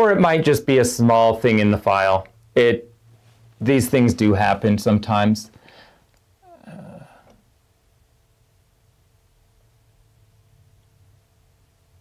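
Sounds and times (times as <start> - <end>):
man saying uh: 6.4 - 7.2.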